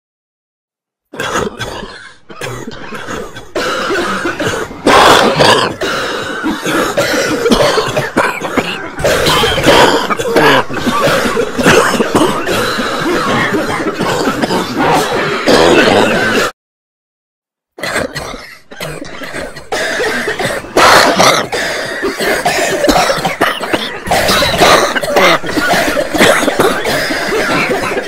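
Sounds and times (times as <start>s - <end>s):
person coughing: 1.2s - 16.5s, 17.8s - 28.0s
person clearing throat: 1.2s - 16.6s, 17.8s - 28.0s.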